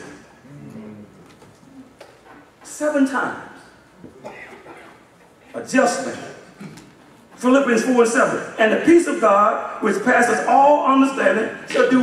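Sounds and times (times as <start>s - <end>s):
faint voice murmur in a hall: 0.0s - 2.2s.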